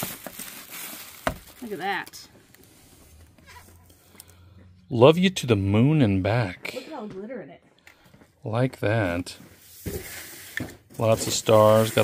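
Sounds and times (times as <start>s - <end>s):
woman speaking: 1.6s - 2.4s, 6.8s - 7.6s.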